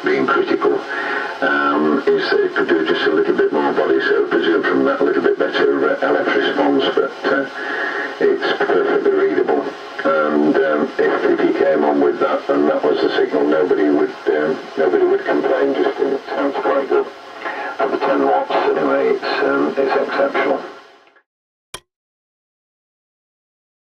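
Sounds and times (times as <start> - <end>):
voice from radio loudspeaker: 0.0 - 20.8.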